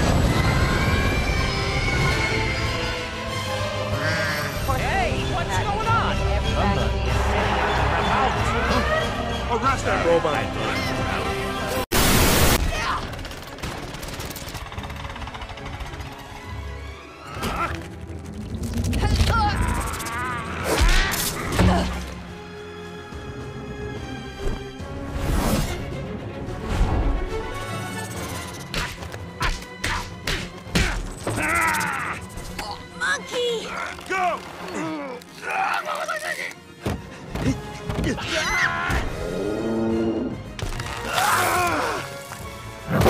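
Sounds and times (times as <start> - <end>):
action film music: 0.0 - 43.0
harsh vocal cry: 41.0 - 42.1.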